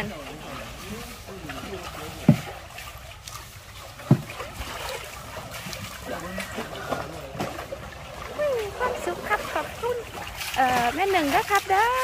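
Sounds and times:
water poured and splashing: 0:00.0 - 0:12.0
low thump: 0:04.0 - 0:04.4.

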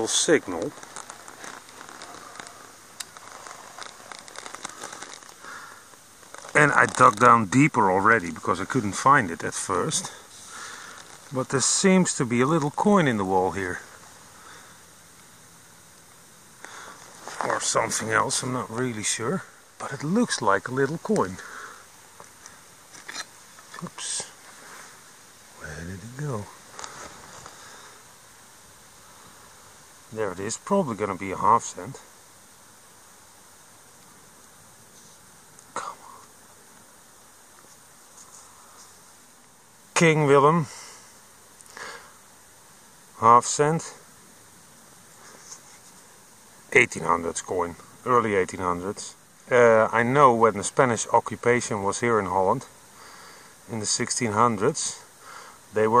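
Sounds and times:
soil crackling and rustling: 0:00.0 - 0:56.0
steady hiss: 0:00.0 - 0:56.0.

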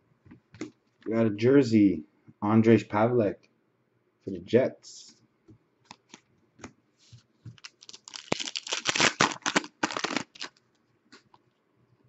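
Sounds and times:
trading cards clicking and rustling: 0:07.5 - 0:10.6.

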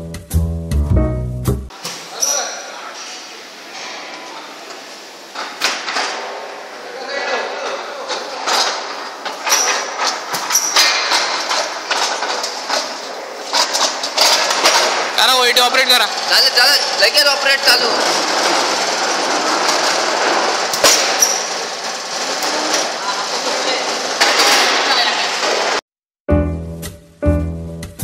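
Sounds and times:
metal casting clacking on rollers: 0:07.4 - 0:25.8.

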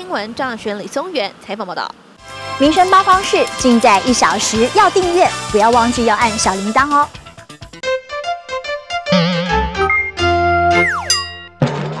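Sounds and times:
cartoon sound effect: 0:09.0 - 0:11.3
falling pitch glide: 0:09.1 - 0:11.2
synthesized logo jingle: 0:09.1 - 0:11.3
wobbling tone: 0:09.1 - 0:11.5.

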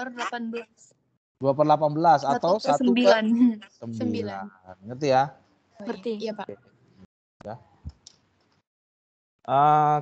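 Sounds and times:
person saying ya: 0:02.3 - 0:04.5.

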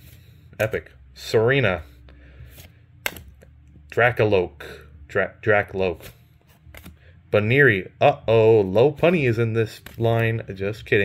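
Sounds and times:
cards scraping together: 0:02.4 - 0:03.4, 0:05.9 - 0:07.0, 0:09.0 - 0:10.4
card flick: 0:02.5 - 0:03.5, 0:06.0 - 0:07.0, 0:09.8 - 0:10.0.

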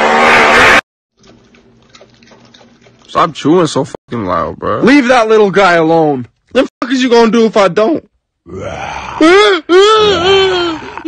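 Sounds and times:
person burping or groaning: 0:08.4 - 0:11.0.

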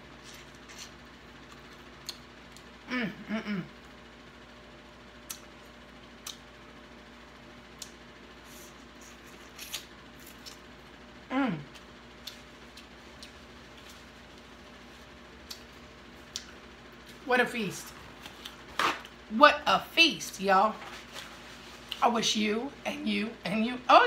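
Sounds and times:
chewing clicks and smacks: 0:01.4 - 0:02.7, 0:06.2 - 0:06.5, 0:11.7 - 0:13.5, 0:15.4 - 0:16.6
person humming mm: 0:02.9 - 0:03.8, 0:11.3 - 0:11.8.

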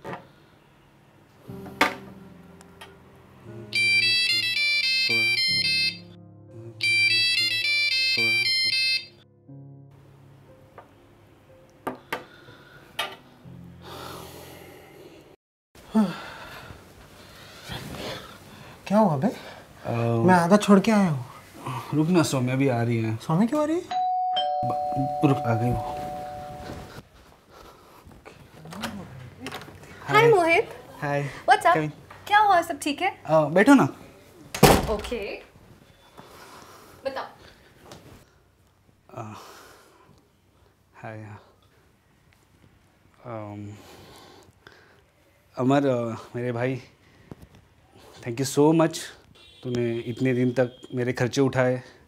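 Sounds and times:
low background music: 0:00.3 - 0:15.3, 0:19.8 - 0:27.0
smartphone ringtone melody: 0:03.6 - 0:09.3, 0:23.9 - 0:27.0
two-tone doorbell chime: 0:03.7 - 0:06.1, 0:06.8 - 0:09.2, 0:23.9 - 0:27.0.

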